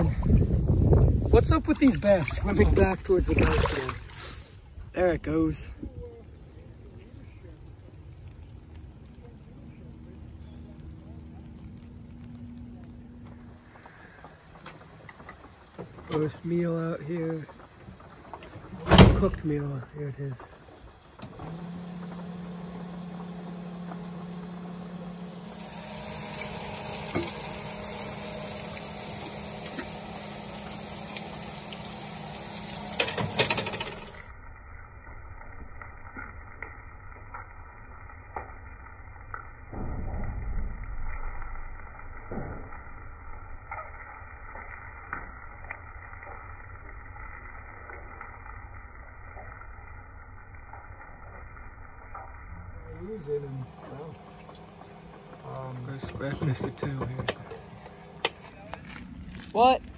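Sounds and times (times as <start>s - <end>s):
low rumble: 0.0s - 32.4s, 33.8s - 59.9s
meat sizzling and frying: 25.1s - 34.3s.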